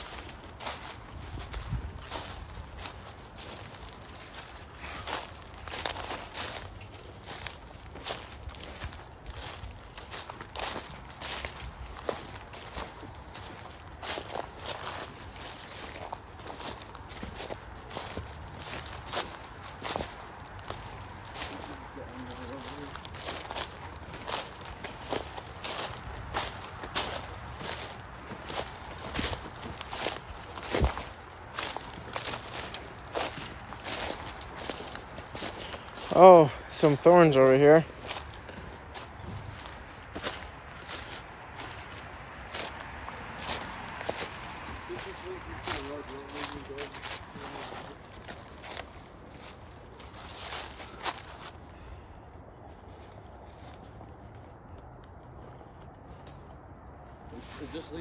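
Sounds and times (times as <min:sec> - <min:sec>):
footsteps in dry leaves: 0:00.0 - 0:58.0.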